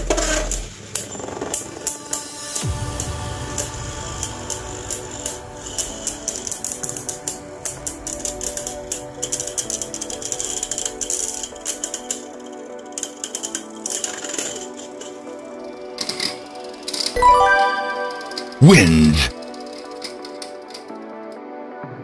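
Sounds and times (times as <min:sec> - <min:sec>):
background music: 0:01.6 - 0:22.0.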